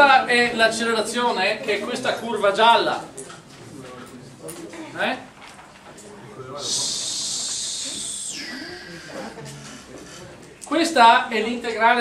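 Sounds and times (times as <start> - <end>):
high-pitched hiss: 6.6 - 9.4.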